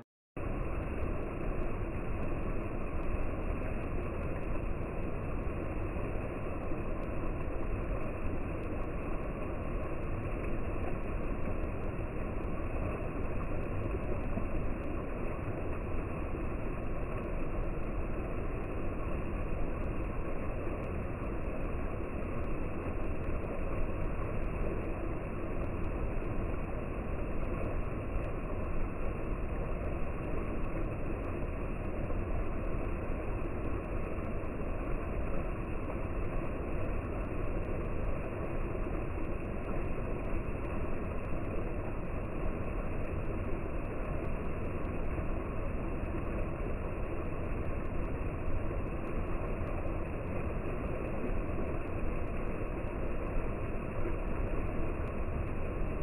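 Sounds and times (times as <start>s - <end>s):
waterfall pouring into pool: 0.4s - 56.0s.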